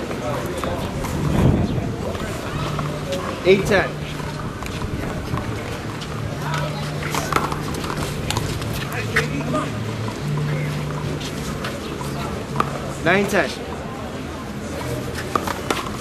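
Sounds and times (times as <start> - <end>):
spectators chatting: 0.0 - 16.0.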